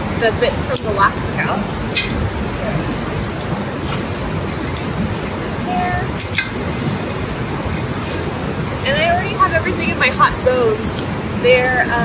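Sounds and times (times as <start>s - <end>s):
river rushing: 0.0s - 12.0s.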